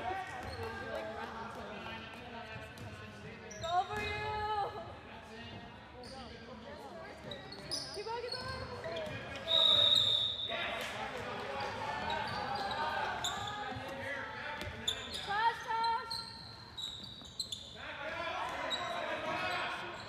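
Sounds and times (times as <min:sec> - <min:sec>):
referee's whistle blast: 0:09.4 - 0:10.6.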